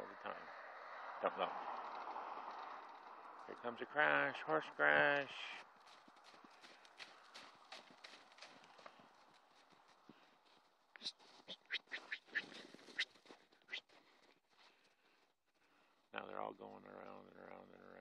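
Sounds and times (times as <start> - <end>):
hoofbeats in snow: 1.8 - 16.2.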